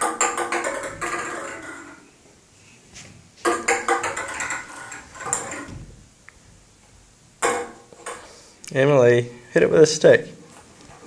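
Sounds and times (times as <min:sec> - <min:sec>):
hard objects tapping and knocking: 0:00.0 - 0:02.0, 0:03.4 - 0:06.1, 0:07.4 - 0:08.4.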